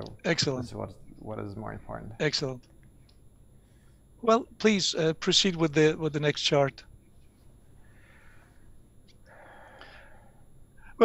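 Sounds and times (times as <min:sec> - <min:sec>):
low line hiss: 0:00.0 - 0:11.0.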